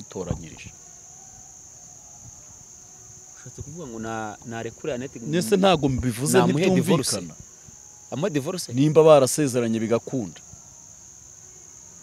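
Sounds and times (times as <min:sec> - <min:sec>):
crickets trilling: 0:00.0 - 0:12.0
man speaking: 0:03.6 - 0:07.4.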